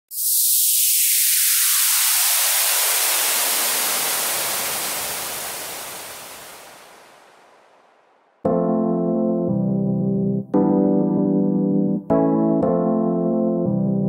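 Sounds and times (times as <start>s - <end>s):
synthesized white-noise sweep: 0.1s - 8.5s.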